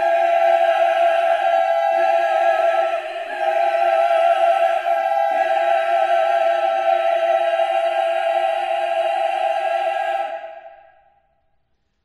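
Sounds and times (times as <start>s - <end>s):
choir holding chord: 0.0s - 11.2s.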